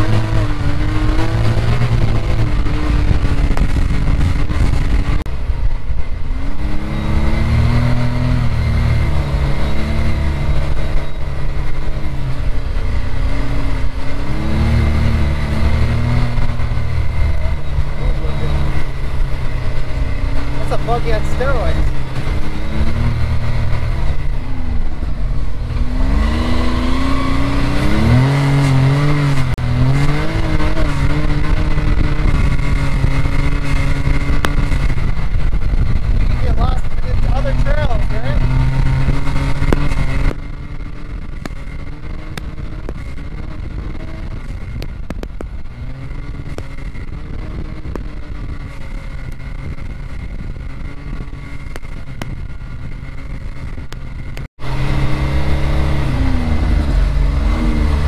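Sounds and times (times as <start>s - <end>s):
engine revving while driving: 0.0s - 58.0s.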